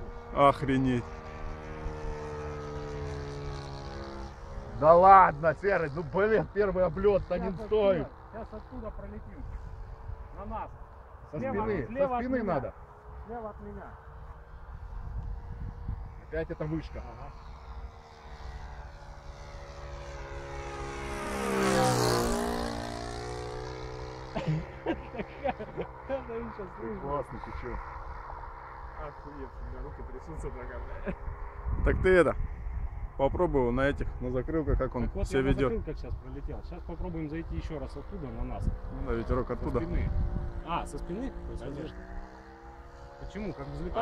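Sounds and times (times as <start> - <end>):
model plane engine droning: 0.0 - 44.0.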